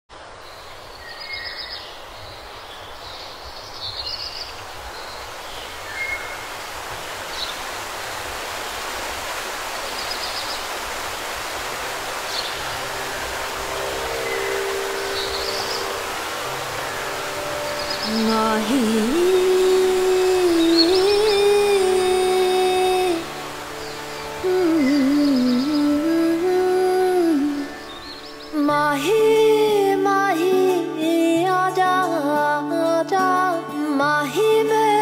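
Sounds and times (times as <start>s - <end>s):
steady background hiss: 0.1s - 35.0s.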